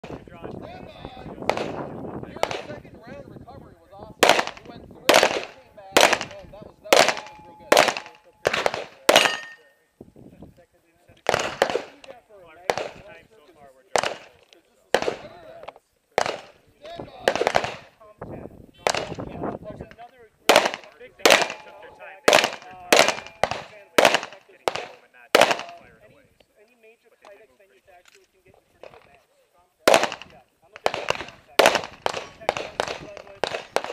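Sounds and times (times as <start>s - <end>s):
handgun shots: 4.2s - 9.6s, 11.2s - 12.0s, 20.5s - 25.8s, 29.9s - 33.9s.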